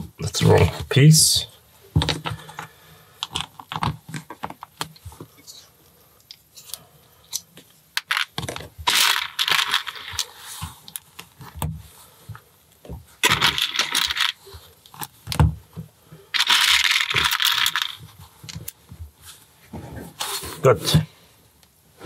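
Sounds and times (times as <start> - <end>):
plastic toy bricks rattling: 8.0 - 10.4, 13.2 - 14.5, 16.4 - 18.0.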